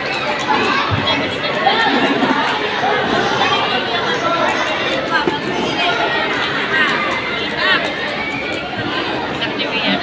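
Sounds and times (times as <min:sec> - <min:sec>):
crowd of children chattering: 0:00.0 - 0:10.0.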